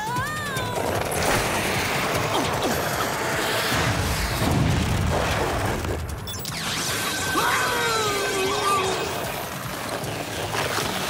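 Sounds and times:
cartoon action music: 5.0s - 9.7s.

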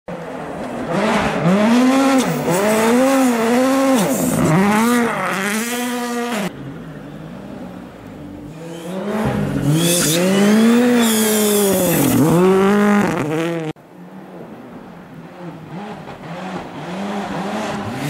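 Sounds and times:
rally car engine revving: 0.7s - 6.6s, 8.4s - 13.8s, 15.2s - 18.0s.

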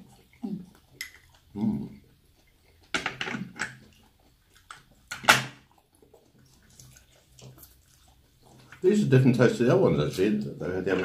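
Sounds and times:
soft clicks and rustles of food: 0.0s - 11.0s.

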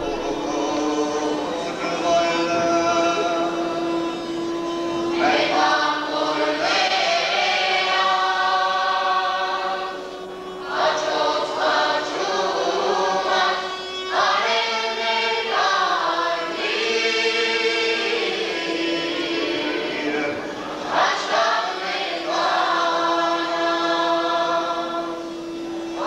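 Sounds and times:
folk ensemble singing in chorus: 0.0s - 26.0s.

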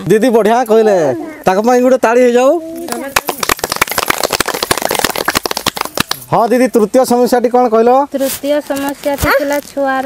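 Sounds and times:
people clapping: 2.9s - 6.3s.

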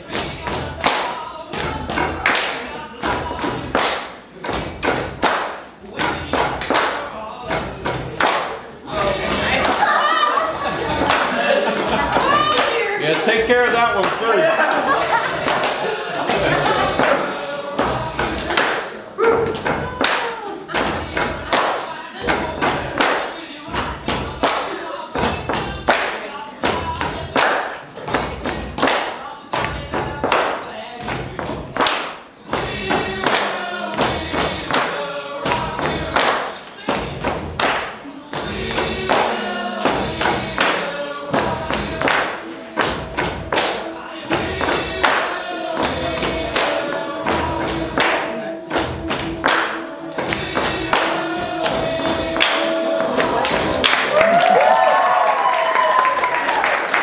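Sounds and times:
faint background music: 0.0s - 55.9s
person singing: 0.0s - 57.0s
sharp percussion hits: 32.5s - 54.2s.

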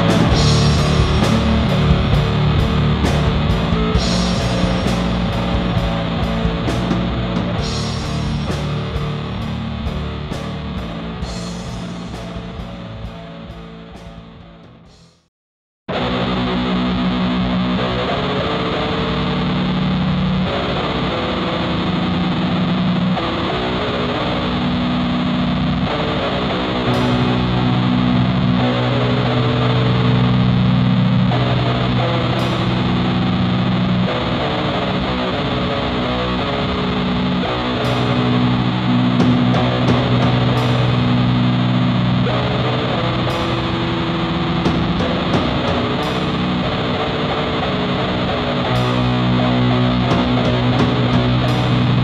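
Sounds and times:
distorted guitar chords: 0.0s - 15.3s, 15.9s - 52.0s.

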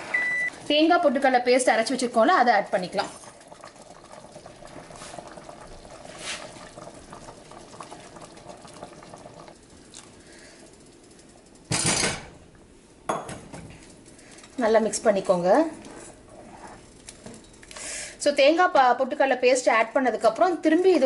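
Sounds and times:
soup bubbling in a pot: 1.8s - 11.6s
loud clatter of kitchenware: 11.7s - 12.4s.

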